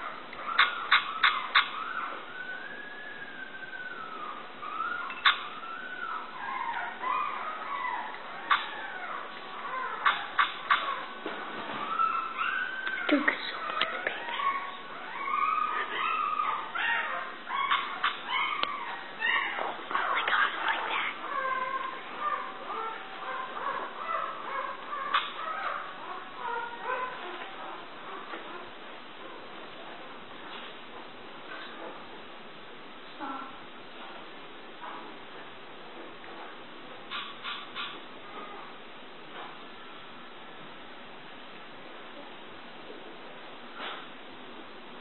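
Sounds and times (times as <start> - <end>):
puppy whining: 0.0 - 30.0
high-pitched animal calls: 0.4 - 11.1, 11.8 - 28.6.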